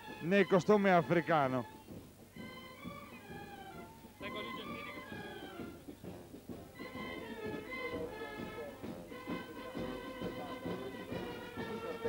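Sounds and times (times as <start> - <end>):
marching band with clarinets: 0.0 - 12.0.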